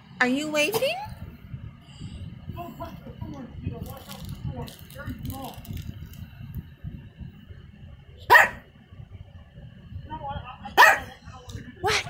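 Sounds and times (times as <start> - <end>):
small dog barking: 8.3 - 8.6, 10.8 - 11.2.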